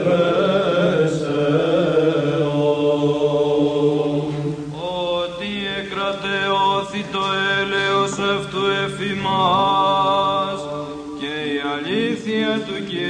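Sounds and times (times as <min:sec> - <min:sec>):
person chanting melismatic line: 0:08.4 - 0:12.1
low held drone note: 0:08.6 - 0:11.2.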